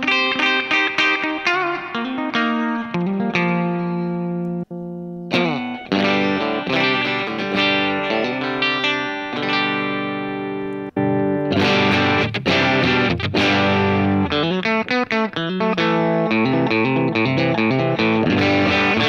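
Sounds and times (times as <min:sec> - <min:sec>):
electric guitar chords and riffs: 0:00.0 - 0:19.0.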